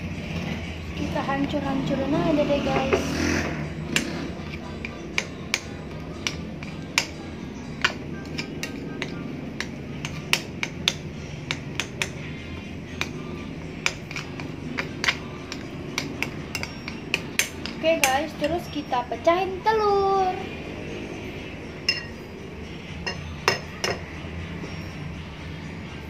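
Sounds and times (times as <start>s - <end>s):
spoon mashing sticky paste: 3.9s - 18.7s
metal spoon clinking on glass bowl: 13.8s - 18.9s, 21.8s - 22.2s, 23.0s - 24.1s.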